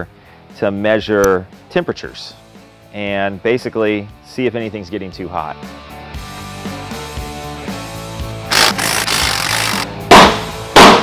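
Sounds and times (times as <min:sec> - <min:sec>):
impact driver hammering: 0:08.5 - 0:11.0
mallet striking metal: 0:10.1 - 0:11.0.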